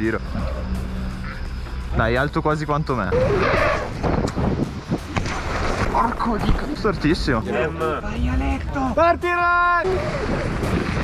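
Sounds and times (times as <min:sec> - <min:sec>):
wind on camera microphone: 0:09.8 - 0:11.0.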